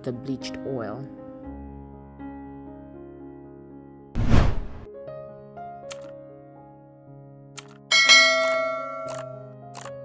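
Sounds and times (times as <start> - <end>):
bell-like chime: 7.9 - 9.4.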